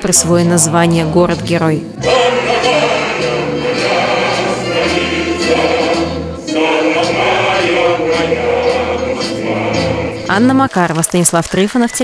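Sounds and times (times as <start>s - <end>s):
choir singing with accompaniment: 0.0s - 10.6s.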